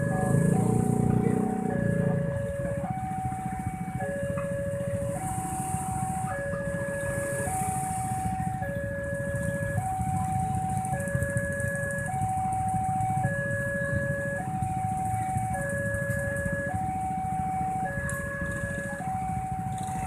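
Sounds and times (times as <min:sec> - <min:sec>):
motorcycles idling: 0:00.0 - 0:20.0.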